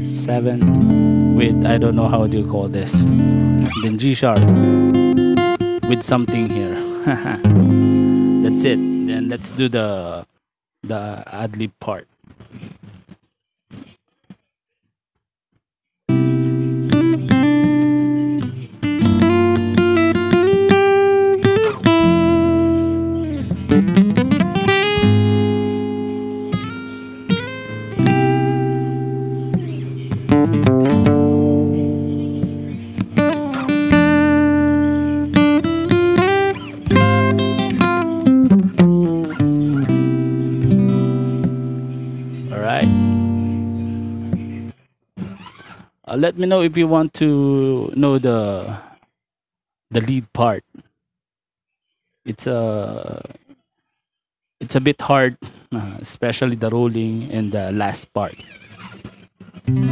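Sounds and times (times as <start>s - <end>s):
acoustic guitar playing: 0.0s - 10.1s, 16.1s - 46.7s, 57.8s - 59.9s.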